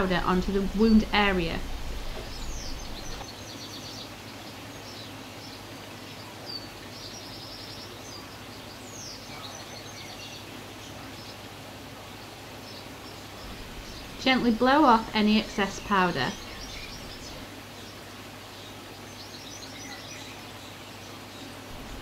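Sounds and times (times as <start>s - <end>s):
songbirds chirping: 0.0s - 22.0s
steady background hiss: 0.0s - 22.0s.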